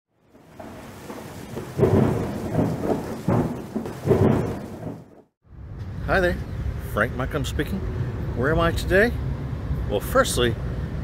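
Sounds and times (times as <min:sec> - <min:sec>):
steady rain: 0:00.2 - 0:05.2
thunder peals: 0:01.0 - 0:05.1.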